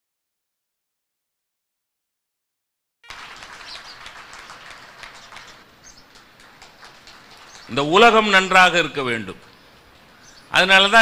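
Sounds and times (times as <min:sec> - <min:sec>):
audience applause: 0:03.0 - 0:08.3.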